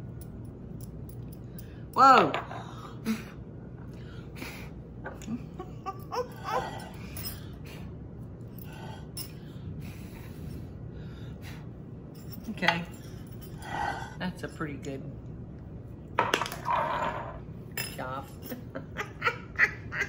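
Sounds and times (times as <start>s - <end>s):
low room hum: 0.0s - 20.0s
woman chuckling and murmuring: 5.1s - 7.3s.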